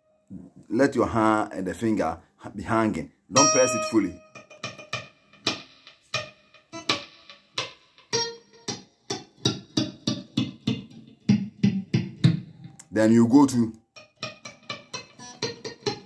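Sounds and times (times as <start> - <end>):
muted electric guitar plucks: 3.4 - 16.0.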